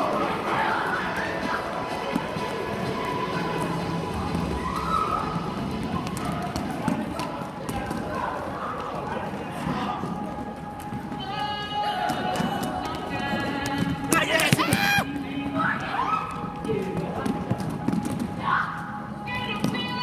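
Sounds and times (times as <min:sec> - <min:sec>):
echoing indistinct voices: 0:00.0 - 0:20.0.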